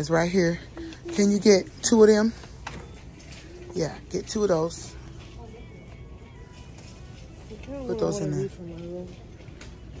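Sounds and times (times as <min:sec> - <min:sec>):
faint background music: 0:00.0 - 0:10.0
low shop hum: 0:00.0 - 0:10.0
woman speaking: 0:07.6 - 0:09.2.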